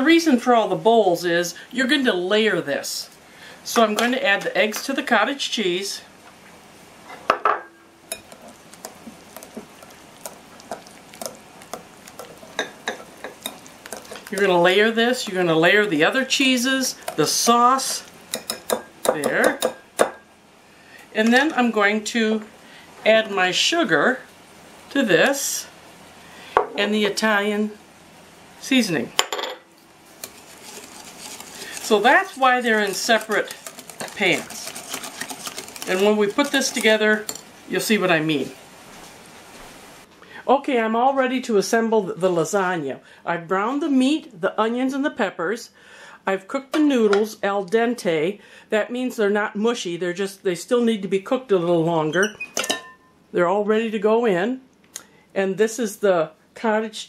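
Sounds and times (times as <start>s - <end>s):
woman speaking: 0.0s - 6.1s, 14.3s - 18.1s, 19.1s - 19.6s, 21.1s - 24.3s, 24.9s - 25.8s, 26.7s - 27.8s, 28.6s - 29.2s, 31.8s - 34.8s, 35.8s - 38.6s, 40.4s - 45.7s, 46.3s - 52.4s, 53.4s - 54.7s, 55.4s - 57.0s
whisk swishing in sauce: 30.2s - 37.4s.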